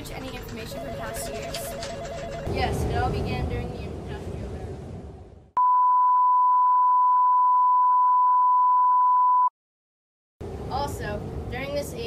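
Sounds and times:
steady test tone beep: 0:00.7 - 0:02.7, 0:05.6 - 0:09.5.

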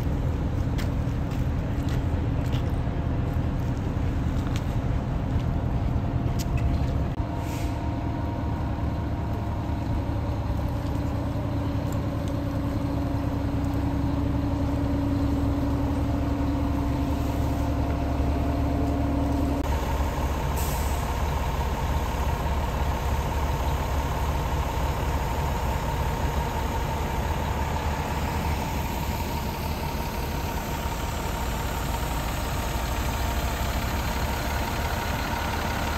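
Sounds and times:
diesel engine idling: 0:00.0 - 0:35.9.

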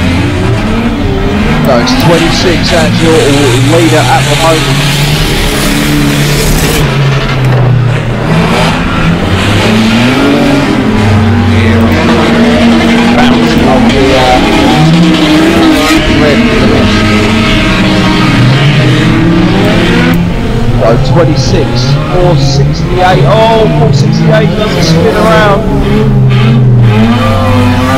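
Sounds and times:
race car engines revving: 0:00.0 - 0:27.9.

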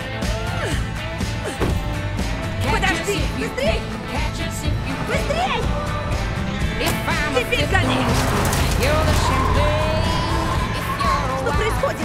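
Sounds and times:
film soundtrack music: 0:00.0 - 0:12.0
car engine accelerating hard: 0:02.6 - 0:11.2.

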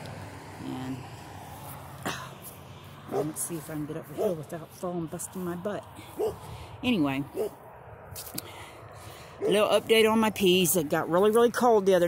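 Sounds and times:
short cough: 0:02.0 - 0:02.4.

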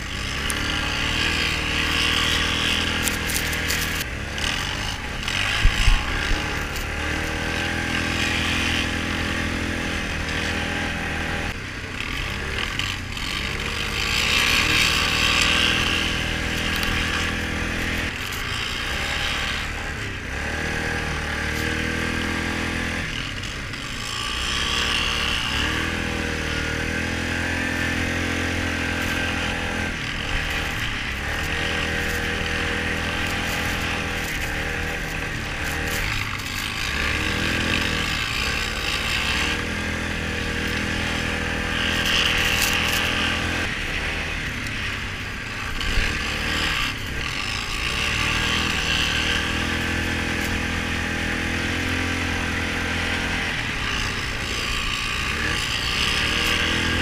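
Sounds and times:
quad bike engine revving: 0:00.0 - 0:57.0.

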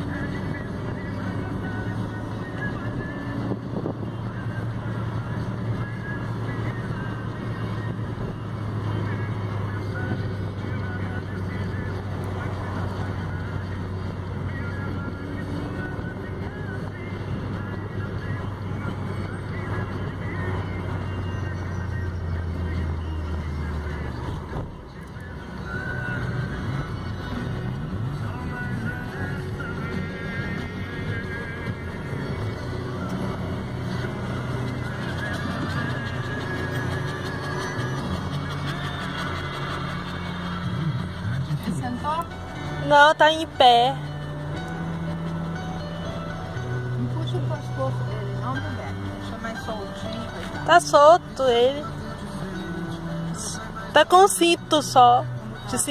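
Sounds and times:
car engine drone and road noise: 0:00.0 - 0:55.9
music playing in car: 0:00.0 - 0:55.9.

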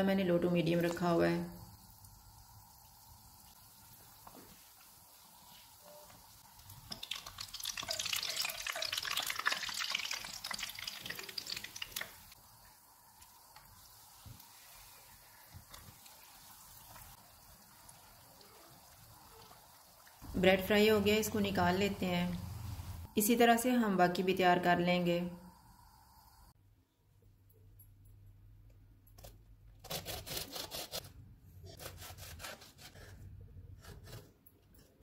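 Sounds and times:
oil sizzling and crackling: 0:00.8 - 0:23.1.

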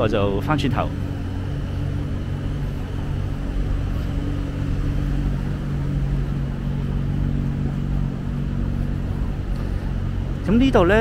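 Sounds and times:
city street traffic hum: 0:00.0 - 0:11.0.

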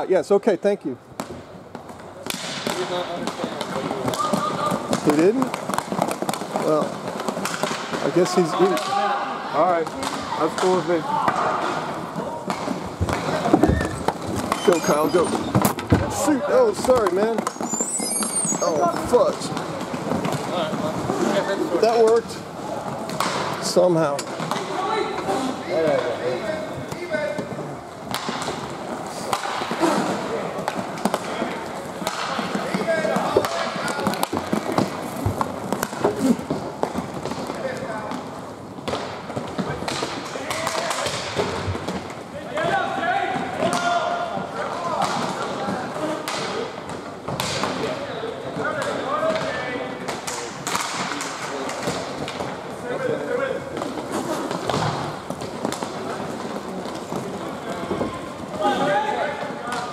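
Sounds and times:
sticks and puck clacking on boards: 0:01.1 - 0:59.9.

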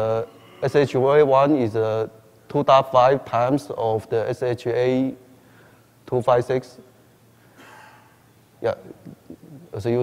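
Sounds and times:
faint breath in: 0:05.4 - 0:06.0.

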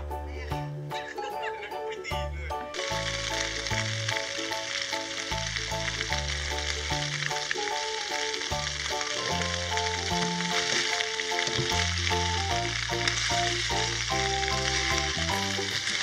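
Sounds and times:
background music: 0:00.0 - 0:16.0
pork skin sizzling in oil: 0:02.7 - 0:16.0.

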